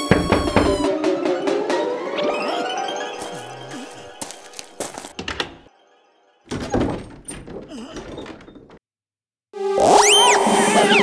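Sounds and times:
knocks on wooden door: 0.0 - 0.9.

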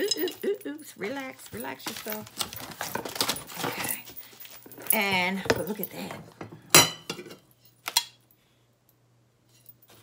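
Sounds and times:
ceramic plates clinking: 0.0 - 0.6.

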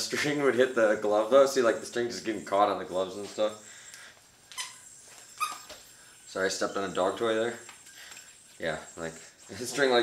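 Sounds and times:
squeaky rubber dog toy: 4.5 - 5.8.

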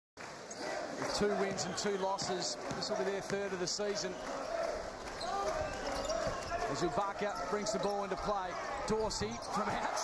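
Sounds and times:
crowd noise: 0.2 - 10.0
arena voices: 3.9 - 10.0.

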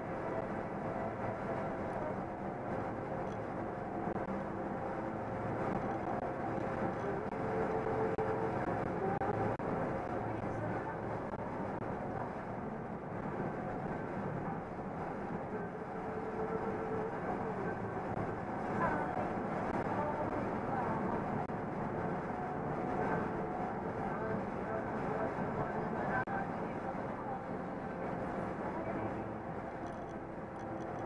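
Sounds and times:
truck engine drone: 0.0 - 31.0.

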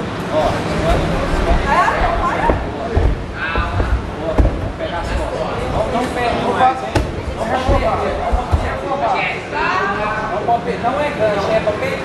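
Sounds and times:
bodies thudding on a mat: 1.3 - 6.3, 7.0 - 9.2.

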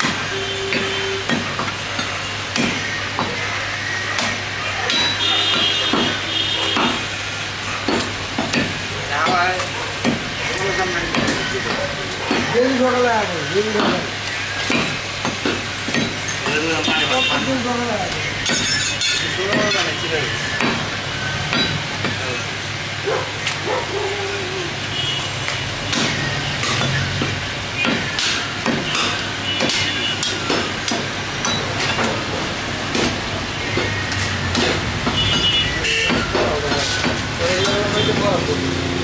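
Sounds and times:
cleaver chopping on wooden block: 2.5 - 3.4, 4.2 - 7.0, 7.9 - 10.3, 11.1 - 12.6, 14.7 - 17.1, 20.5 - 20.9, 25.9 - 32.2, 32.9 - 35.4.

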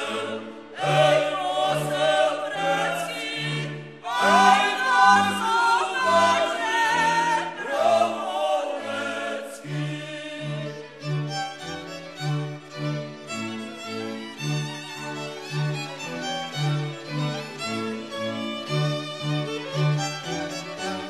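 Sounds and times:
folk song sung by several voices: 0.0 - 12.3.

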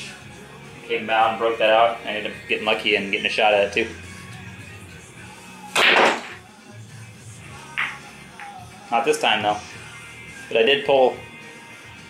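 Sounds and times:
faint background music: 0.0 - 12.0
pool cue striking ball: 5.7 - 6.4, 7.7 - 8.5.

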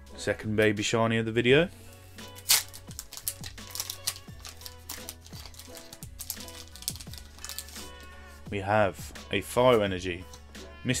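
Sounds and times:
background music: 0.0 - 11.0
foil wrapper crinkling: 2.4 - 8.1.

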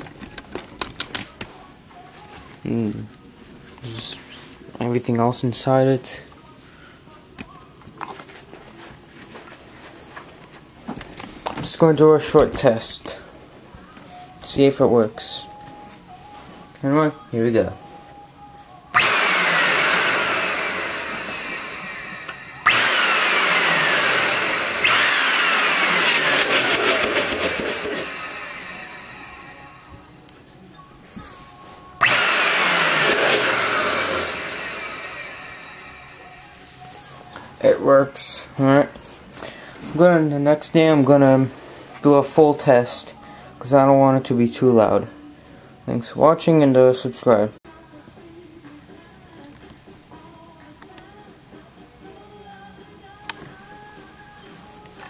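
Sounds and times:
vacuum motor whine: 18.9 - 30.1, 32.0 - 37.0.

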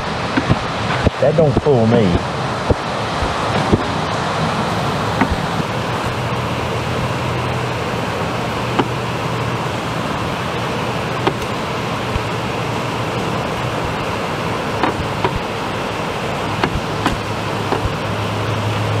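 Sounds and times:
records clacking together: 0.0 - 4.0, 4.7 - 6.2, 8.6 - 9.6, 11.1 - 12.4, 14.7 - 15.6, 16.4 - 18.2
heavy rain hissing: 0.0 - 19.0.

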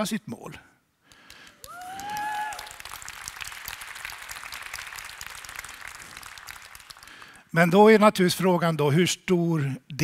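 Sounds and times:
audience applauding: 1.3 - 7.4.

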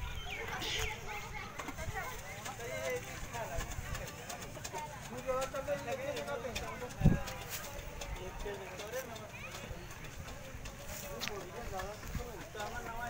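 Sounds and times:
distant people talking: 0.0 - 13.0.

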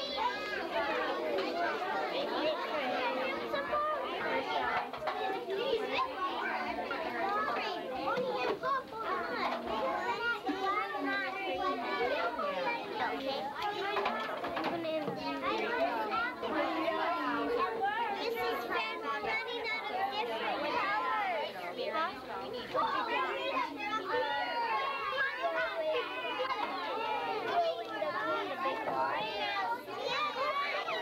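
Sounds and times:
children chattering: 0.0 - 31.0.

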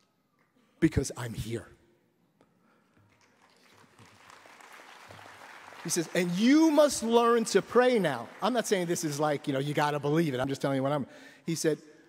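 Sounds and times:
audience applause: 3.1 - 10.0.

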